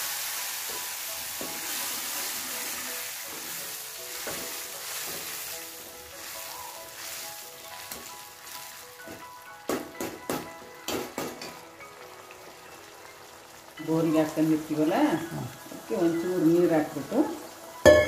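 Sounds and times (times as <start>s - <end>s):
greens sizzling in hot oil: 0.0s - 18.0s.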